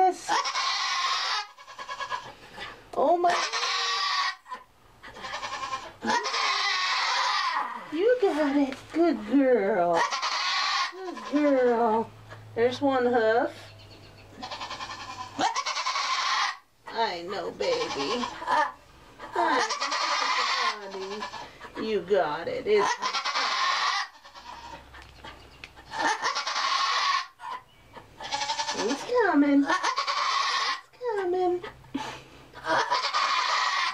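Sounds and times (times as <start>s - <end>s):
goat bleating: 0.0s - 2.6s, 3.2s - 8.5s, 9.9s - 11.9s, 13.6s - 22.0s, 22.7s - 25.1s, 25.9s - 27.6s, 28.2s - 31.3s, 32.6s - 33.9s.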